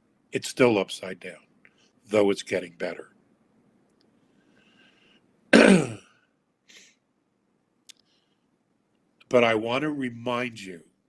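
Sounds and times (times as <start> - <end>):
man clearing throat: 5.5 - 6.2.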